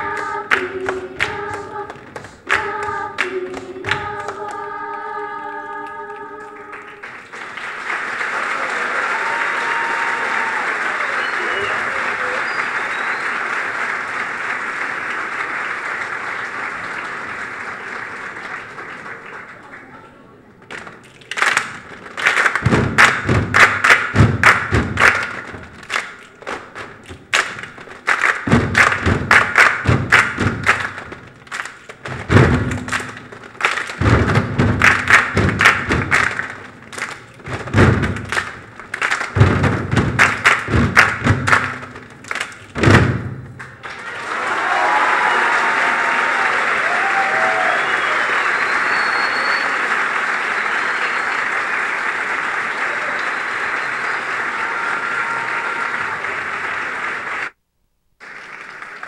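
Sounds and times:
audience applause: 6.2s - 57.6s, 58.2s - 59.0s
feet stomping on wooden stage: 22.5s - 43.7s.

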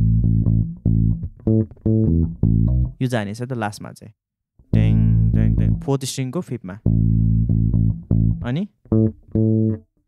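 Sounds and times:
electric bass guitar plucked notes: 0.0s - 3.0s, 4.6s - 6.2s, 6.8s - 10.0s.

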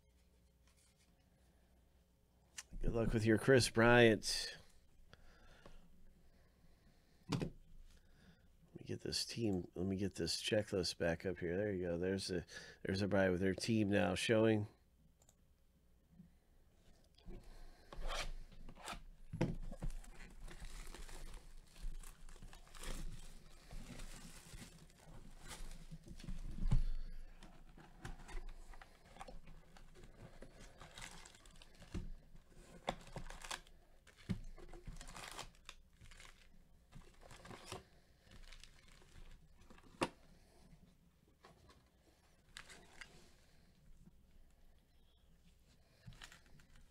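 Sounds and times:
foil packs crinkling: 19.8s - 27.1s, 29.0s - 39.9s.

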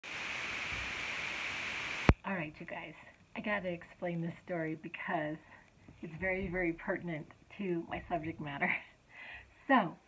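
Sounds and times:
static hiss: 0.0s - 6.0s.

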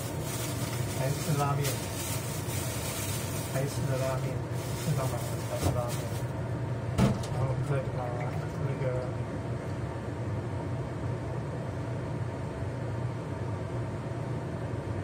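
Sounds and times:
range hood fan humming: 0.0s - 15.0s.

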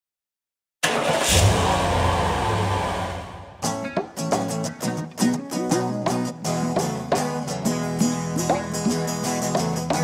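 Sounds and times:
acoustic guitar strumming: 1.9s - 10.0s.

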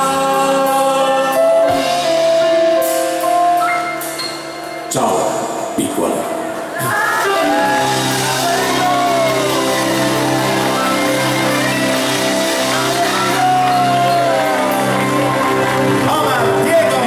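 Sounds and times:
live band music: 0.0s - 17.0s.

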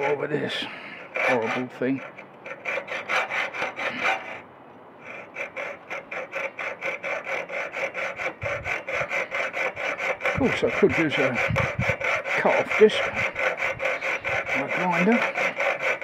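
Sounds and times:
hand saw cutting metal: 0.0s - 4.4s, 5.0s - 16.0s.

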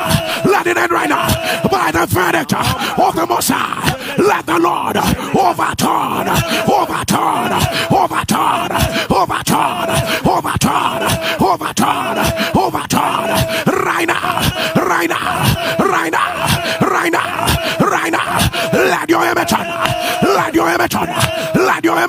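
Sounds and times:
person loud rapid prayer vocalizing: 0.0s - 22.0s.

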